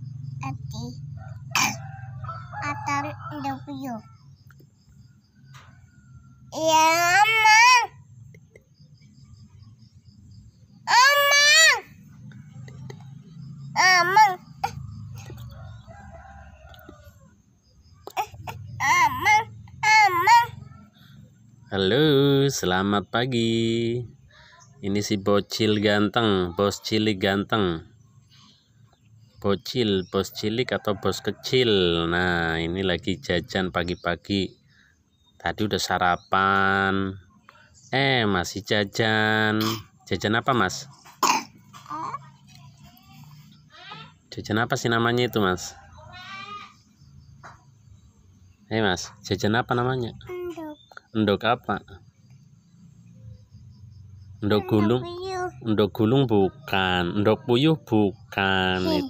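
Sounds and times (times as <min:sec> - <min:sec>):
rooster crowing: 0:01.1 - 0:04.0, 0:14.3 - 0:17.5.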